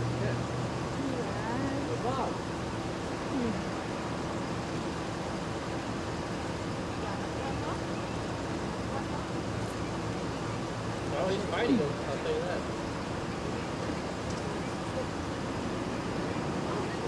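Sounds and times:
faint voices: 0.0 - 2.5, 3.2 - 3.9, 6.7 - 17.0
vehicle engine idling: 0.0 - 17.0.

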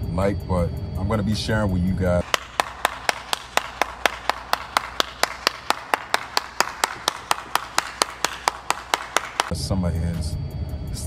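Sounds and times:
person clapping hands: 2.2 - 9.5.

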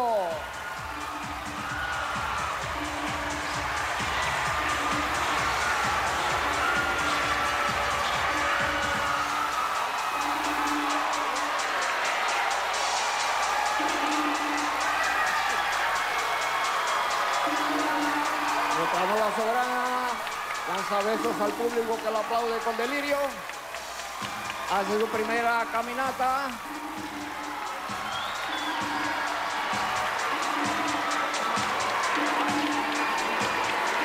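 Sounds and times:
audience cheering and applauding: 0.0 - 34.0
stage music: 0.0 - 34.0.

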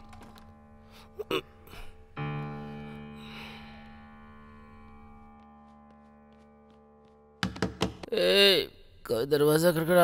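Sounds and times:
held chord of film score music: 0.6 - 7.4
sharp knocks on a door: 7.4 - 8.1.

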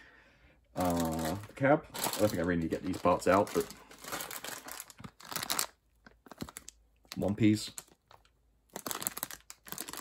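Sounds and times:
plastic bag crinkling: 0.8 - 10.0.

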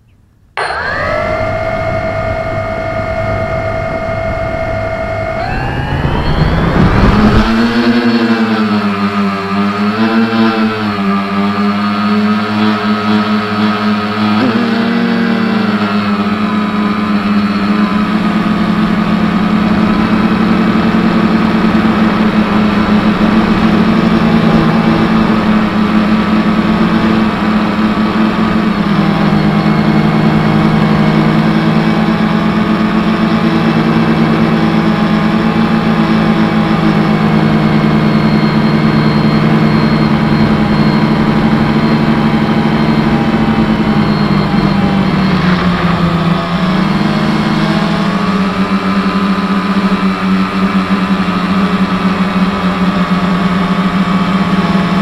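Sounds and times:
drone propellers humming: 0.0 - 55.0.

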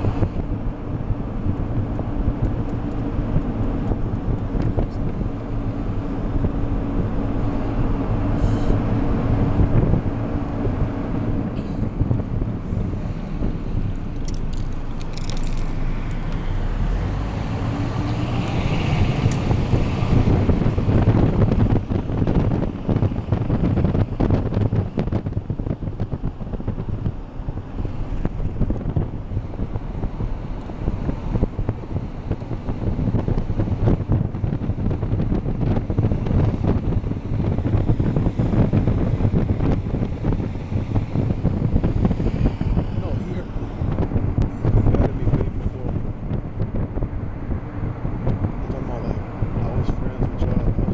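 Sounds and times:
car driving rumble: 0.0 - 50.9
wind buffeting microphone: 0.0 - 50.9.

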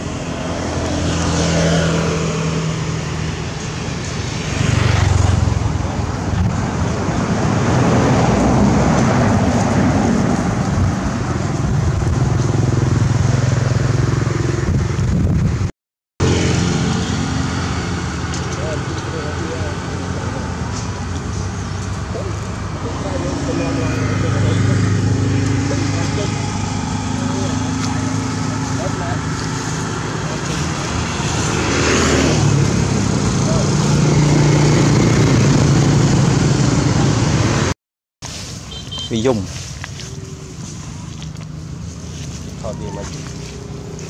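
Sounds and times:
vehicle engines on road: 0.0 - 44.0
vehicle passing: 0.0 - 44.0.

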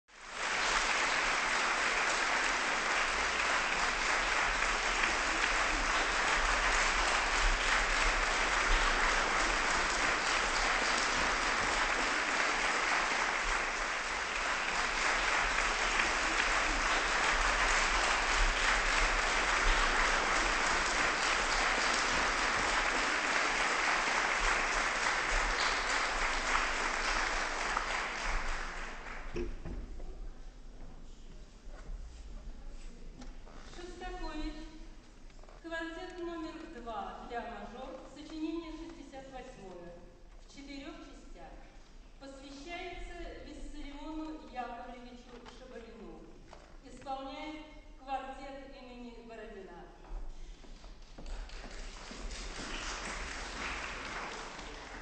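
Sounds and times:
audience applauding: 0.1 - 29.4, 51.2 - 55.0.

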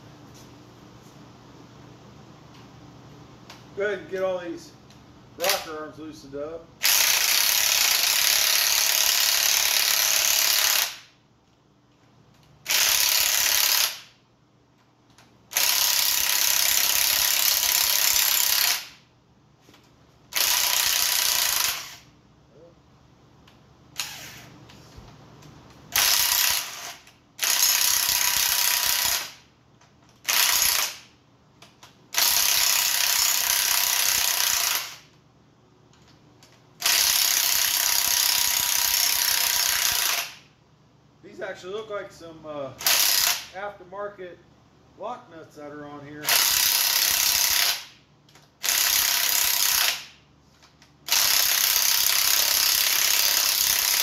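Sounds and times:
impact wrench hammering: 6.8 - 11.1, 15.5 - 19.0, 20.3 - 22.1, 25.9 - 29.4, 30.2 - 31.1, 32.1 - 35.1, 36.8 - 40.4, 51.1 - 54.0.

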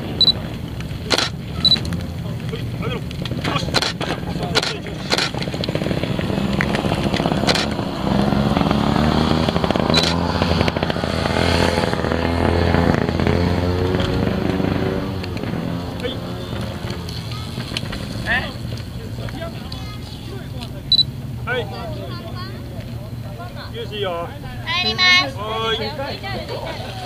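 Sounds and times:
motorcycle engine running: 0.0 - 24.7.

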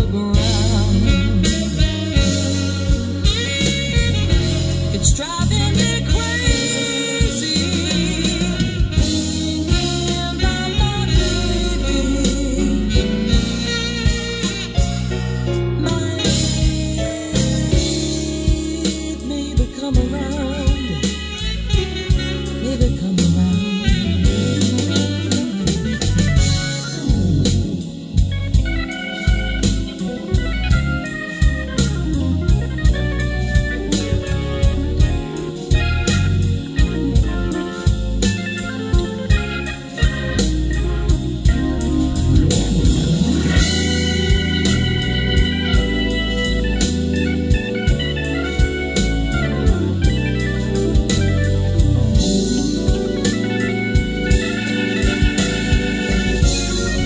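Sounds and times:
drum beat: 0.0 - 15.6, 16.4 - 57.0
held keyboard chords: 0.0 - 57.0
instrumental jazz on car stereo: 0.0 - 57.0.

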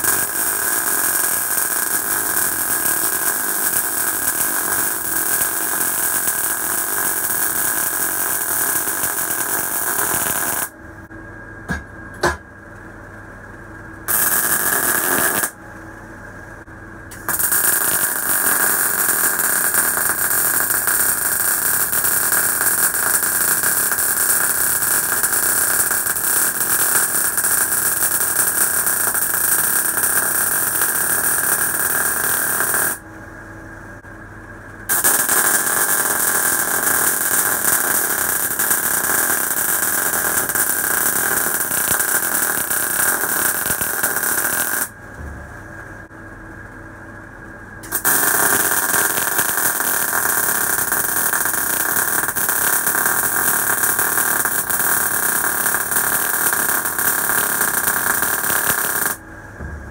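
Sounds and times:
welding arc sizzling: 0.0 - 10.8, 14.1 - 15.6, 17.1 - 33.0, 34.9 - 45.0, 47.8 - 59.2
low welder hum: 0.0 - 59.9.

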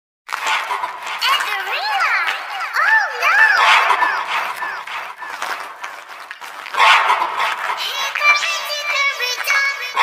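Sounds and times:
cartoon animal bark: 2.1 - 4.8.

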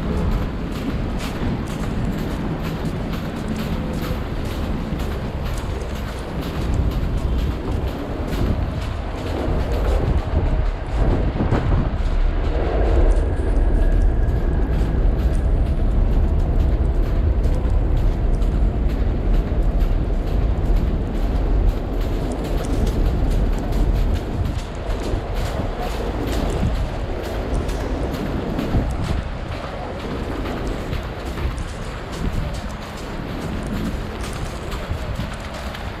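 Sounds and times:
street traffic rumble: 0.0 - 36.0
wind buffeting microphone: 0.0 - 36.0.

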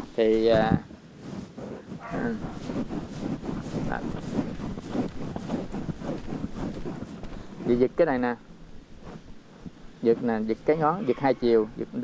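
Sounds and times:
faint rustle: 0.0 - 12.0.

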